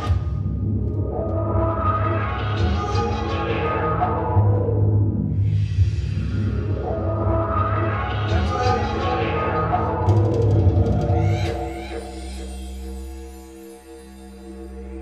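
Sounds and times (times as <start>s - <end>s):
looped didgeridoo drone: 0.0s - 15.0s.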